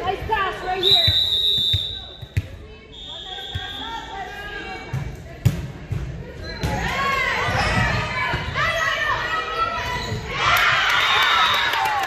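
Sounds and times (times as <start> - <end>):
referee whistle blasts: 0.8 - 4.1.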